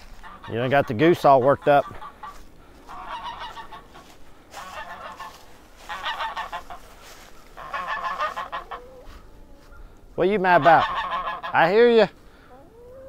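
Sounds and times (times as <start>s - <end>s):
goose honking: 0.0s - 13.0s.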